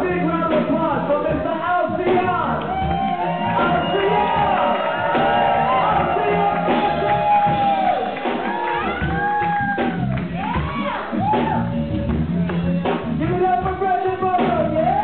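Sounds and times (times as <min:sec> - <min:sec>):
guitar: 0:00.0 - 0:15.0
keyboard: 0:00.0 - 0:15.0
live band playing: 0:00.0 - 0:15.0
people shouting and whooping: 0:02.5 - 0:12.2.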